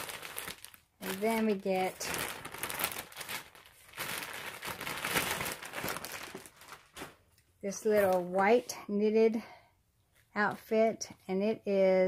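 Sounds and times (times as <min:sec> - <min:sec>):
plastic bags crinkling: 0:00.0 - 0:08.4.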